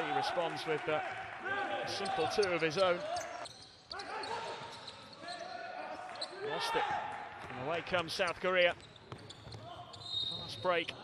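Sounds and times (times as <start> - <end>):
players' voices: 0.0 - 8.8
basketball bouncing on court: 8.9 - 9.7.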